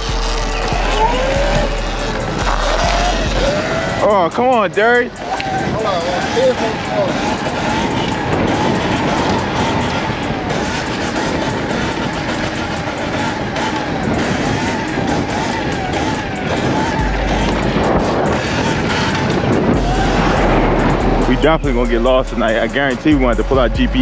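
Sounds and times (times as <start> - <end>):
music: 0.0 - 24.0
wind rushing over microphone: 0.0 - 24.0.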